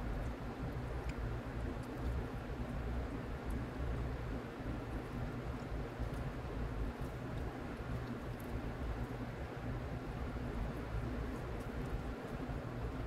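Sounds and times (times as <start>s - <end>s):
low room rumble: 0.0s - 13.0s
faint ticks: 1.0s - 2.2s
close-up chewing: 4.9s - 9.3s.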